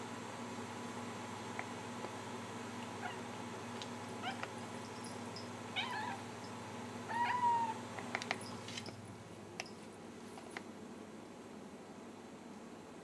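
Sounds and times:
low steady hum: 0.0s - 13.0s
cat chirping: 3.0s - 3.3s, 4.2s - 4.4s, 5.8s - 6.2s, 7.1s - 7.8s
cat meowing: 5.8s - 6.2s, 7.1s - 7.8s.

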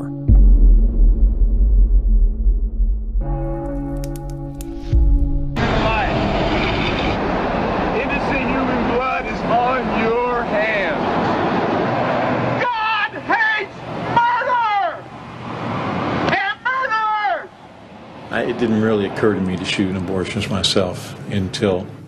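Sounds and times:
traffic noise: 5.6s - 22.0s.

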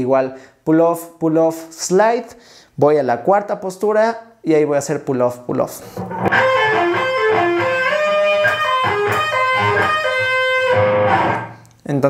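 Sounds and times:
electric guitar legato run: 6.0s - 11.6s.

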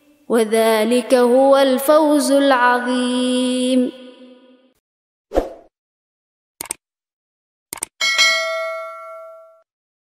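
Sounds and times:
echoing recited voice: 0.1s - 4.7s.

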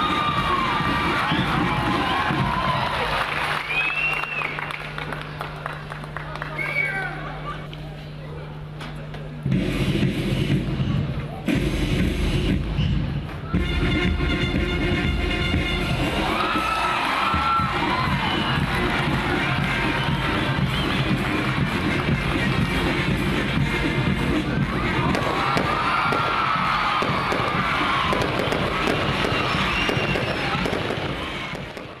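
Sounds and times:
military marching band playing: 0.0s - 3.1s, 9.4s - 32.0s
crowd cheering and shouting: 0.0s - 4.7s, 15.6s - 32.0s.

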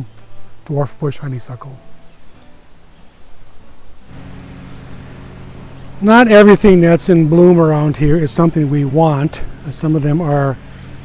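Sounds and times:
outdoor background noise: 0.0s - 11.0s
steady low hum: 1.5s - 11.0s.

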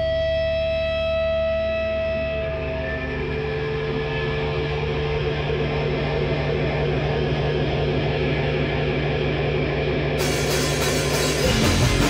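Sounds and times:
electric guitar droning: 0.0s - 12.0s.

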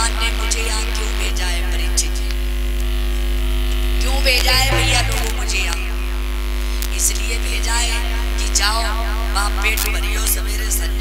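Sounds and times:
electrical mains hum: 4.4s - 5.6s
steady held tones: 4.4s - 5.7s.

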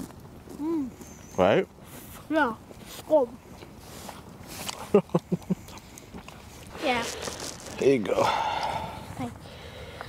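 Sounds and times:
person laughing: 4.8s - 5.7s.

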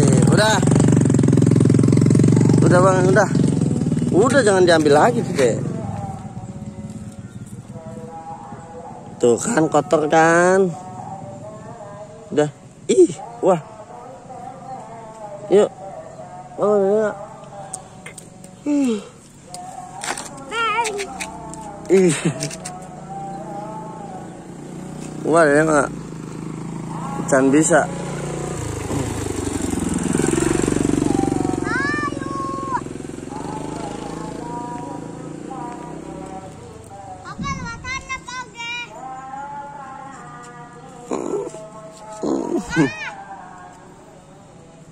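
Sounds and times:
motorcycle engine running: 0.0s - 13.7s, 14.6s - 39.6s
child's high-pitched call: 20.5s - 21.1s, 31.4s - 32.8s, 37.2s - 39.0s, 42.7s - 43.2s.

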